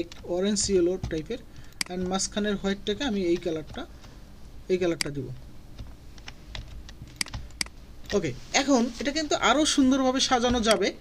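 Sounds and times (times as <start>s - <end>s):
computer keyboard keys clicking: 5.0s - 7.7s.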